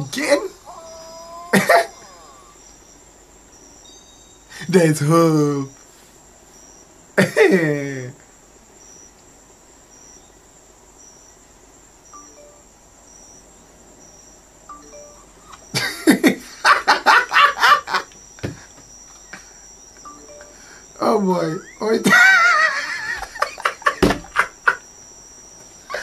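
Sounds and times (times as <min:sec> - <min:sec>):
faint high chirp: 0:00.0 - 0:07.0, 0:08.8 - 0:09.2, 0:09.8 - 0:10.4, 0:11.0 - 0:11.4, 0:12.0 - 0:16.8, 0:17.6 - 0:22.0.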